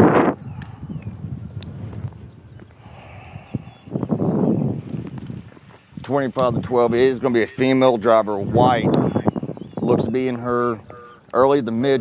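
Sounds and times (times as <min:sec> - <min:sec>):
rushing noise on microphone: 0:00.0 - 0:11.1.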